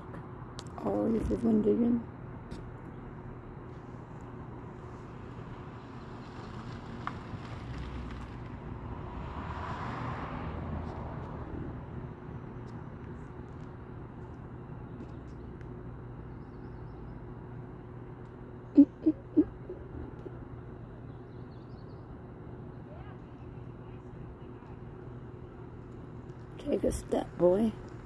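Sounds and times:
low outdoor hum: 0.0 - 28.0
car passing: 4.8 - 13.4.

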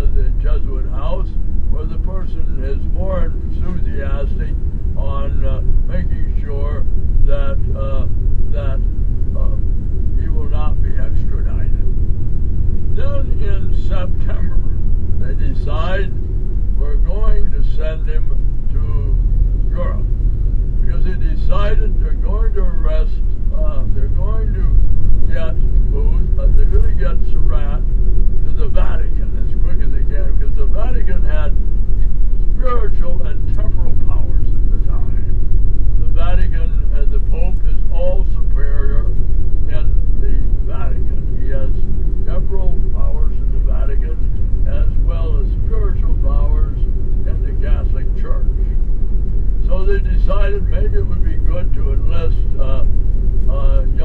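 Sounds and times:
person talking indistinctly: 0.0 - 11.9, 12.9 - 16.2, 16.8 - 20.1, 20.8 - 31.6, 32.4 - 35.4, 36.0 - 48.8, 49.6 - 52.9, 53.5 - 54.0
vehicle engine and road noise: 0.0 - 54.0.

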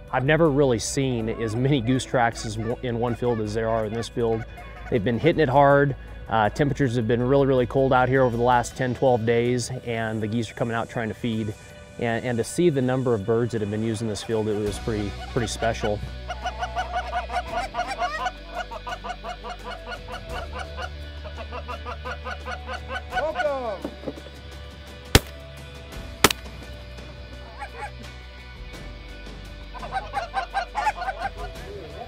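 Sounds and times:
geese honking: 15.0 - 23.8, 27.4 - 28.0, 29.7 - 31.6
shotgun shots: 25.2 - 25.4, 26.2 - 26.6.

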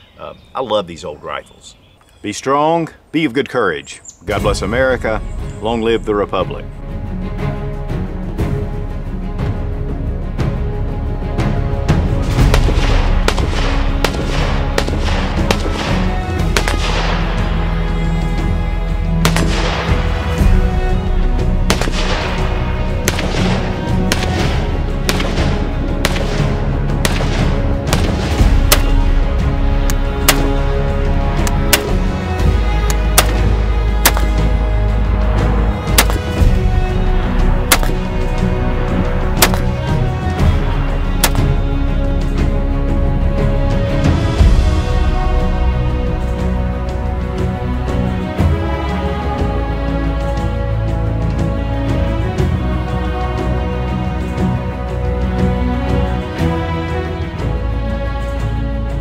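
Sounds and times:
background music: 0.0 - 59.0
rifle shots: 12.5 - 17.4, 19.2 - 20.1, 21.7 - 22.4, 23.0 - 29.0, 30.2 - 30.7, 31.5 - 32.1, 32.8 - 34.5, 35.9 - 36.4, 37.6 - 38.0, 39.4 - 39.8, 41.2 - 41.5.

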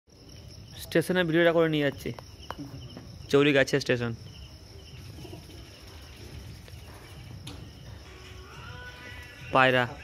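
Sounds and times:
crickets chirping: 0.1 - 10.0.

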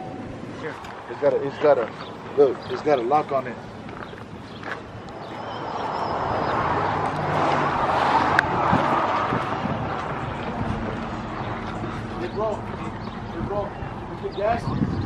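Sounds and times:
motor vehicle passing: 0.4 - 15.0.

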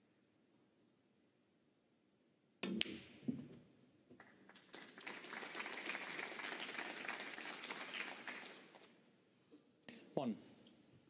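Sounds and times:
audience applauding: 4.2 - 8.9.

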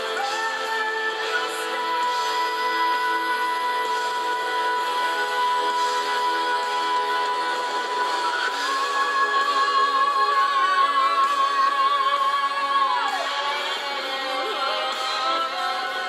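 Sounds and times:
woman singing a ballad: 0.0 - 16.0.

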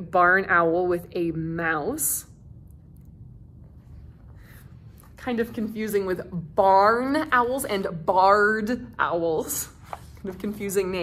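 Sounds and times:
steady low hum: 0.0 - 11.0.

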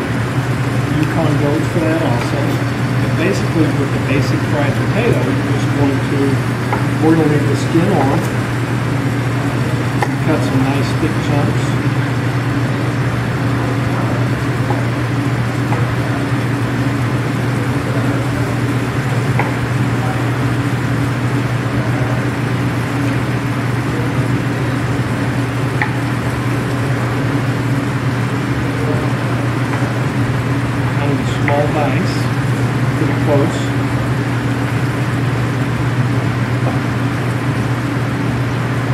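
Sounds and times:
ventilation fan hum: 0.0 - 38.9.

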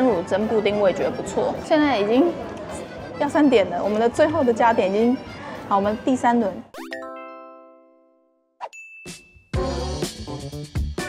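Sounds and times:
bell-like chime: 6.8 - 9.5
high ding: 8.7 - 9.4.

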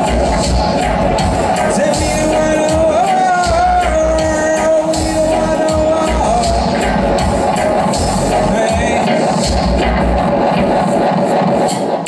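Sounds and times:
dub music over sound system: 0.0 - 12.0.

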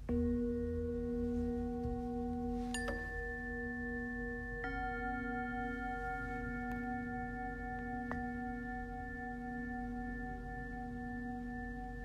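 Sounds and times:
low steady hum: 0.0 - 12.0
bell-like tone ringing: 0.1 - 12.0.

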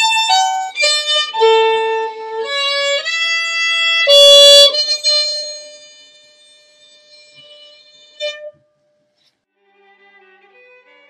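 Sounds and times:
short bowed fiddle note: 0.0 - 8.7
fiddle held note ringing: 0.0 - 8.9.

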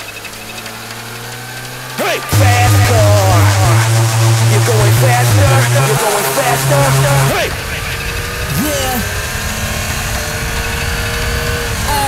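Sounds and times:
drum and bass music: 2.3 - 7.5.

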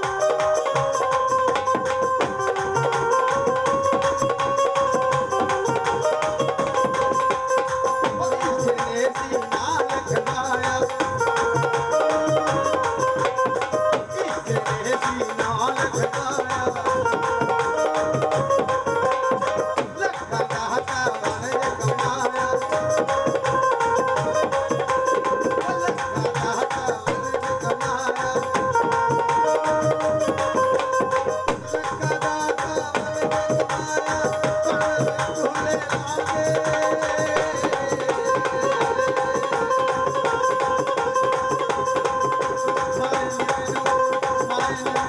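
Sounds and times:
hand drum beats: 0.0 - 45.0.

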